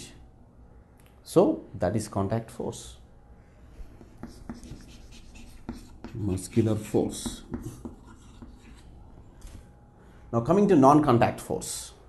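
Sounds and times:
chalk tapping and scratching on chalkboard: 4.0s - 9.0s.

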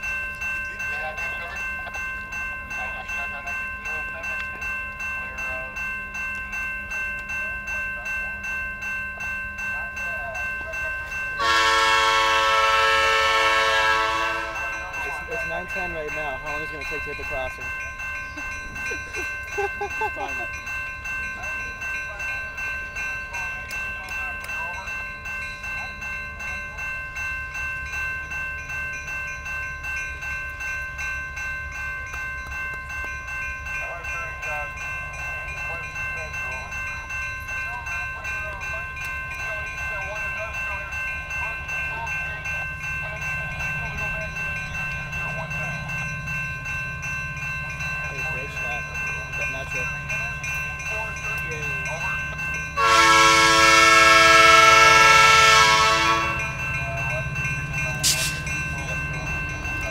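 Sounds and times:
crossing bell ringing: 0.0s - 59.9s
locomotive engine rumble: 0.0s - 59.9s
locomotive air horn blast: 11.4s - 14.6s, 52.8s - 56.5s.

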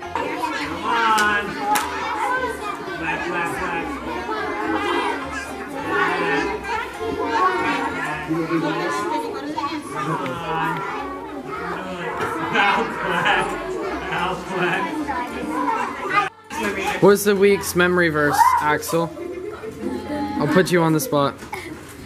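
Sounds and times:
children chattering and squealing: 0.0s - 22.0s.

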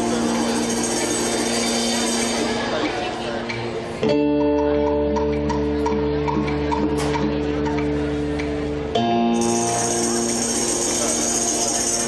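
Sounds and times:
short plucked notes: 2.6s - 12.0s.

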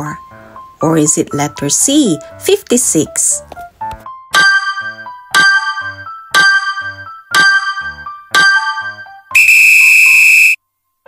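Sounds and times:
electronic timer buzzer: 9.4s - 10.6s.

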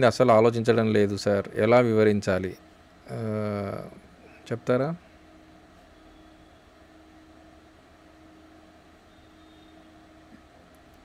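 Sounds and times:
thin low hum: 0.0s - 11.0s.

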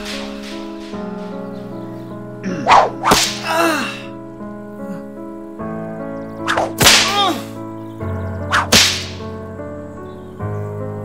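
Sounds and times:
sustained music chords: 0.0s - 11.0s
whip swishing and cracking: 2.6s - 3.5s, 6.5s - 7.3s, 8.5s - 9.3s.

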